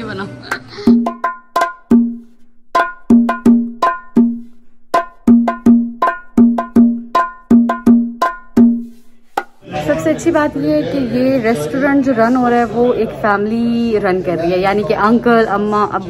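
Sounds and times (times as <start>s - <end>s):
pitched percussion rhythm: 0.4s - 10.0s.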